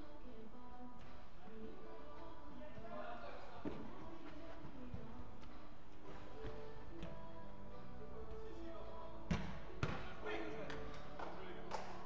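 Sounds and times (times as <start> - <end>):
players' voices: 8.2 - 12.0
football being kicked thumps: 9.3 - 10.1.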